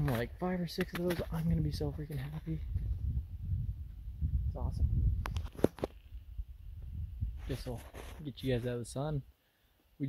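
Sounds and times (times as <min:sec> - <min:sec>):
wind rumbling on microphone: 0:01.2 - 0:08.6.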